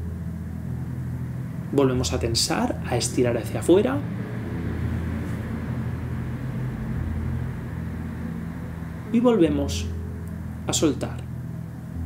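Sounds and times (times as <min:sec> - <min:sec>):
soft ambient drone music: 0:00.0 - 0:12.0.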